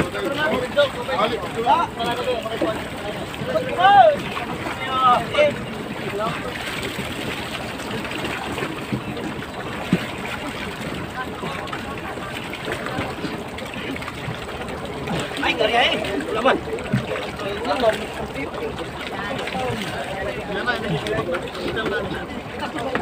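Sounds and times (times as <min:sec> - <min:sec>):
fishing boat noise: 0:00.0 - 0:23.0
sea: 0:00.0 - 0:23.0.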